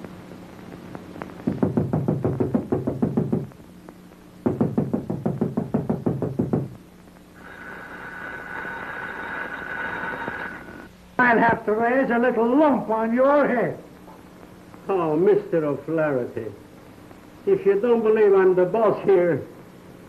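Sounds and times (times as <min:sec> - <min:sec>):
faint steady whine: 0:00.0 - 0:20.0
rapid knocking on a door: 0:01.5 - 0:03.5, 0:04.4 - 0:06.7.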